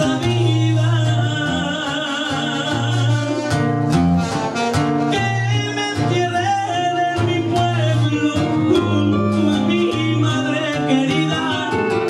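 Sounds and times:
person singing: 0:00.0 - 0:03.8, 0:05.0 - 0:12.0
live band playing latin dance music: 0:00.0 - 0:12.0.

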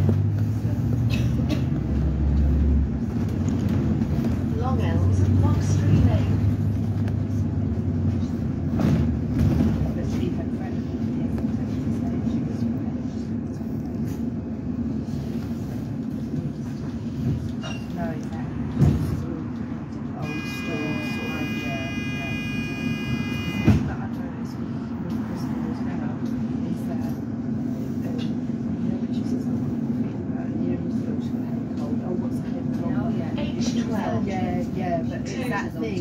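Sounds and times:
bus engine drone: 0:00.0 - 0:36.0
road rumble: 0:00.0 - 0:36.0.

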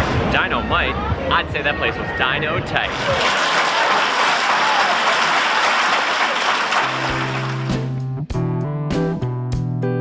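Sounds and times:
crowd applause and cheering: 0:02.7 - 0:08.0.

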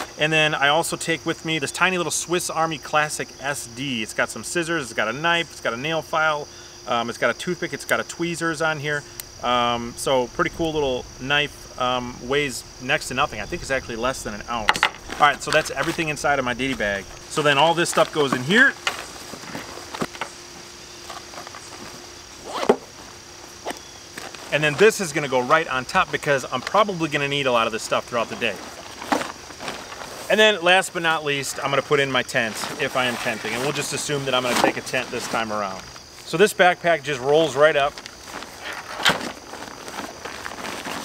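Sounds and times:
insects chirring: 0:00.0 - 0:41.0
nylon sack rustling: 0:09.4 - 0:36.0, 0:37.5 - 0:41.0.

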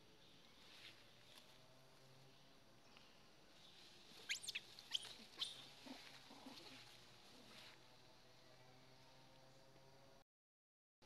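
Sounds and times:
young monkeys squeaking: 0:04.2 - 0:06.6.

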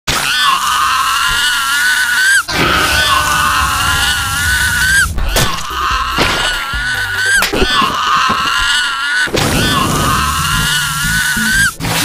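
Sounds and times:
cartoon high-pitched scream: 0:00.1 - 0:11.8.

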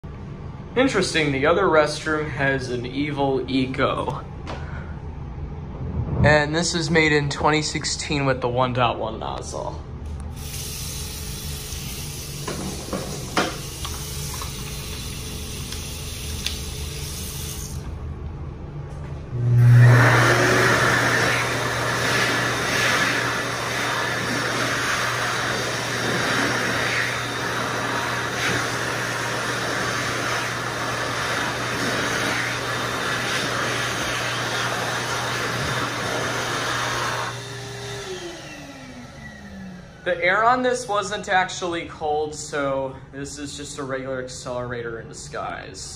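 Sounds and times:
water running from faucet: 0:13.1 - 0:17.8
hand dryer blowing: 0:19.3 - 0:40.5.

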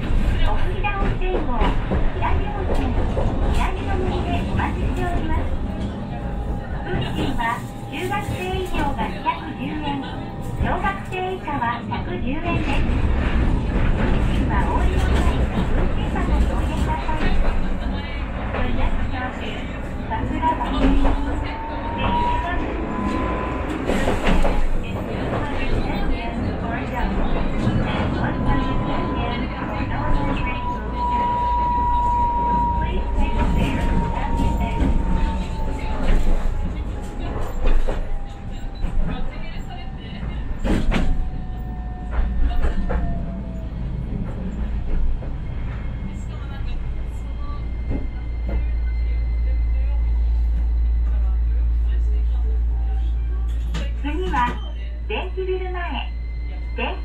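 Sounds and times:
indistinct voices: 0:00.0 - 0:57.0
tram rumbling on track: 0:00.0 - 0:57.0.

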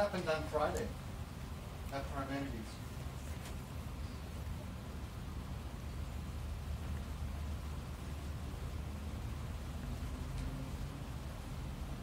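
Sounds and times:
faint hiss: 0:00.0 - 0:12.0
faint tick: 0:10.3 - 0:10.5.

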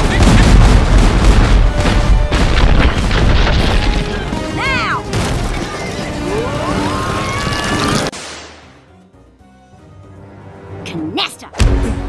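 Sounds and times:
deep rumbling booms: 0:00.0 - 0:03.9
driving action music score: 0:00.0 - 0:12.0.

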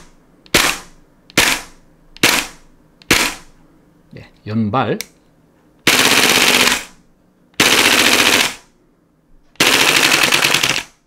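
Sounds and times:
airsoft rifle full-auto bursts: 0:00.5 - 0:03.4, 0:05.8 - 0:07.0, 0:07.6 - 0:08.7, 0:09.6 - 0:11.0.

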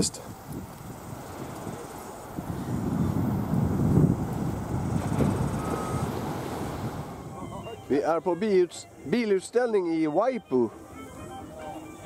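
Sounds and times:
wind buffeting microphone: 0:00.0 - 0:09.2.

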